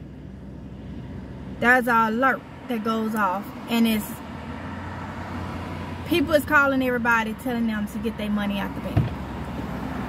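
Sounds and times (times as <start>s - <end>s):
car cabin hum: 6.1s - 9.8s.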